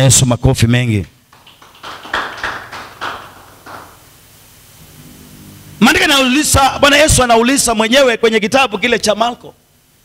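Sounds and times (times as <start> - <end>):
congregation applauding: 1.3 - 4.1.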